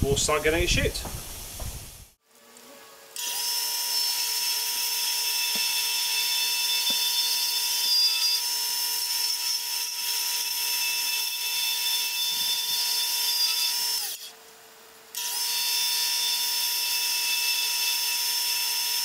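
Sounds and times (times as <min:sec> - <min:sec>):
cutting tool whining on acrylic: 0:03.2 - 0:14.4, 0:15.1 - 0:19.0.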